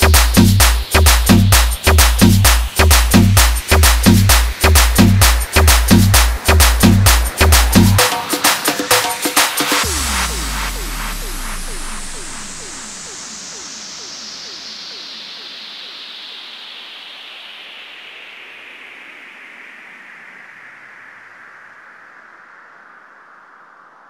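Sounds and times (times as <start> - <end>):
white noise sweep falling: 0.0 - 18.3.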